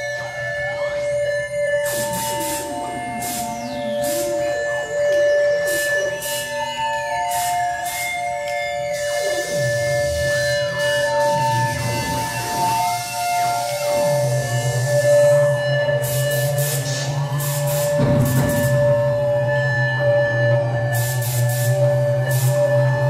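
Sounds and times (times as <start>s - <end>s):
sustained synthesizer drone tones: 0.0s - 23.0s.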